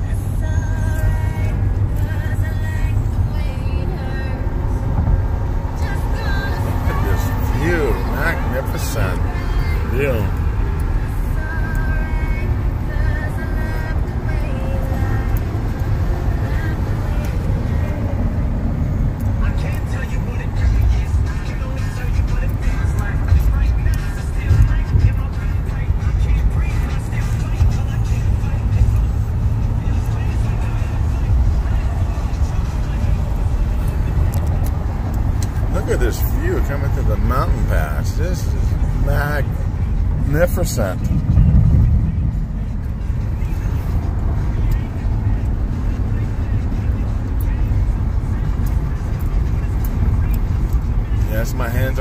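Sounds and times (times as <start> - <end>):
car road and engine rumble: 0.0 - 52.0.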